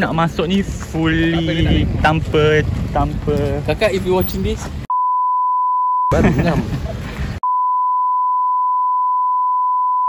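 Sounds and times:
censor bleep tone: 4.9 - 6.2, 7.4 - 10.0.

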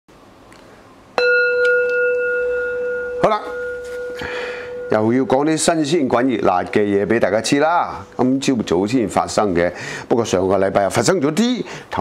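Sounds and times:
bell-like chime ringing: 1.2 - 8.6.

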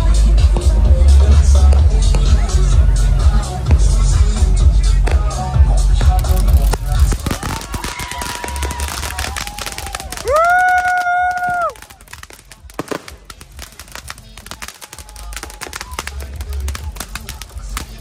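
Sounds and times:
firecrackers popping: 0.4 - 18.0.

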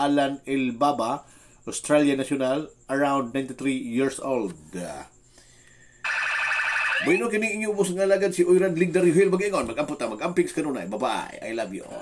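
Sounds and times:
warbling electronic alarm: 6.0 - 7.6.

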